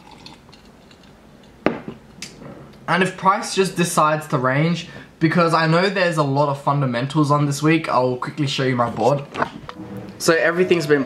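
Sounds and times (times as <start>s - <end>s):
glass knocking on hard surface: 1.7s - 2.0s.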